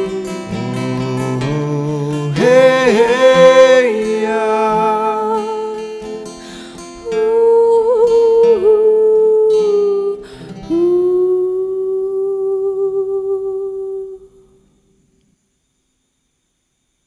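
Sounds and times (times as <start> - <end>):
acoustic guitar strums: 0.0 - 7.4
held vocal note: 0.0 - 14.5.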